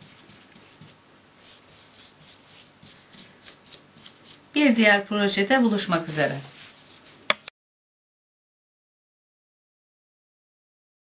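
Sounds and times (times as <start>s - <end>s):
paintbrush strokes: 0.0s - 4.4s, 5.7s - 7.4s.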